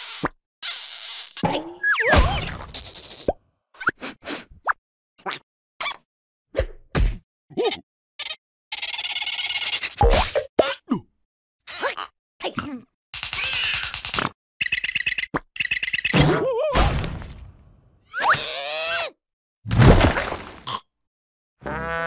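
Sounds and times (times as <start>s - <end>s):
cartoon whack: 1.5s - 2.7s
squeaky character noises: 7.5s - 10.8s, 11.7s - 12.6s.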